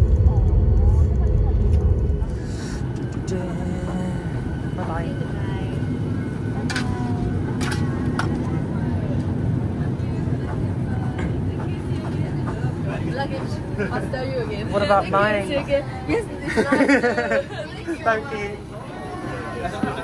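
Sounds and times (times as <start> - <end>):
cabin air rumble: 0.0 - 17.4
faint passenger chatter: 0.0 - 20.0.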